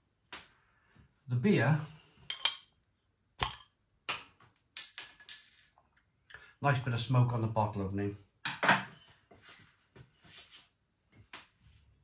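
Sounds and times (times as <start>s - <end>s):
bottle cap popping off: 3.4s - 4.2s
metallic clinks: 4.8s - 5.8s.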